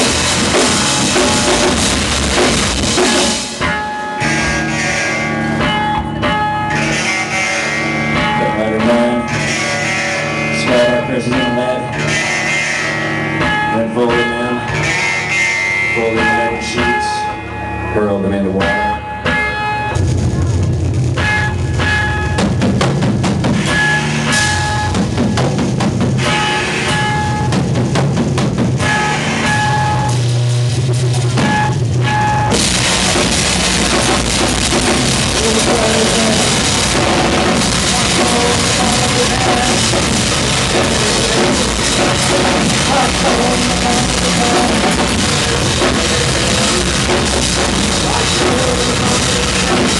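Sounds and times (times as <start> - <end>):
drum kit: 0.0 - 17.4, 18.6 - 49.9
electric guitar: 0.0 - 49.9
rock band playing loudly: 0.0 - 49.9.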